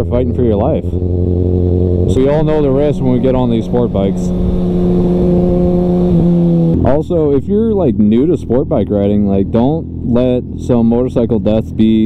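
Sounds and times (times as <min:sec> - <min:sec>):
motorcycle engine running: 0:00.0 - 0:12.0
wind noise on microphone: 0:00.9 - 0:07.6.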